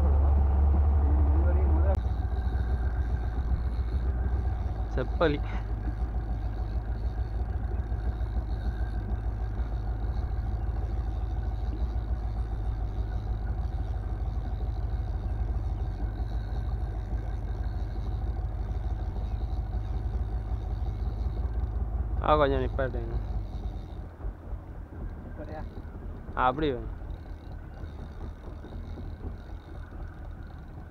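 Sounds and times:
outboard motor running: 0.0s - 30.9s.

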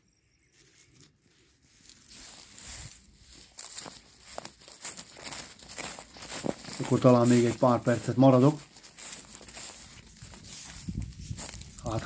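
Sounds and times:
footsteps through dry reeds: 0.5s - 12.0s
man speaking: 6.7s - 8.6s, 11.8s - 12.0s.

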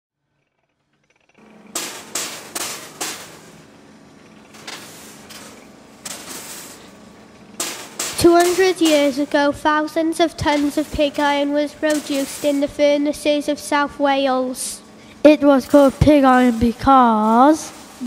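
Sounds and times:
steady low hum: 0.4s - 18.0s
sharp strikes: 1.7s - 3.7s, 4.5s - 12.8s.

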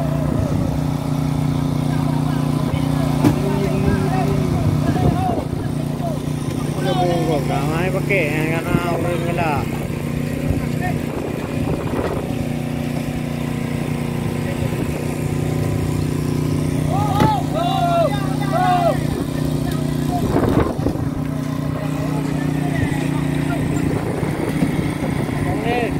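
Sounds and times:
boat engine humming: 0.0s - 25.9s.

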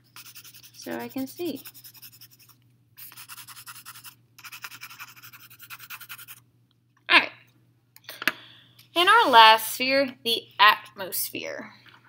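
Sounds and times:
pencil shading on paper: 0.2s - 6.4s.

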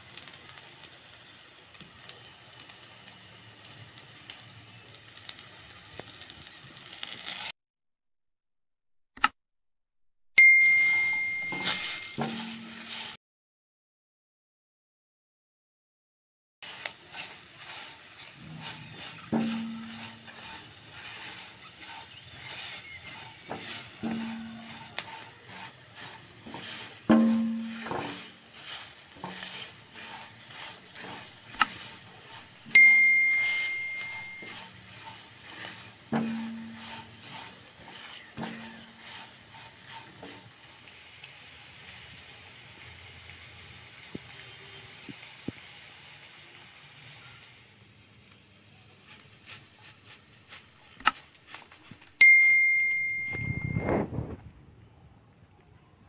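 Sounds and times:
chillies sizzling in oil: 0.0s - 7.6s, 10.6s - 13.2s, 16.6s - 54.4s
spatula knocking against pan: 26.4s - 28.4s, 36.1s - 39.2s.

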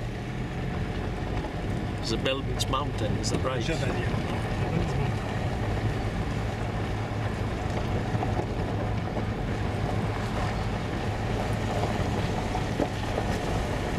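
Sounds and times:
car engine hum: 0.0s - 13.9s
tyres rumbling on gravel: 0.0s - 13.9s.

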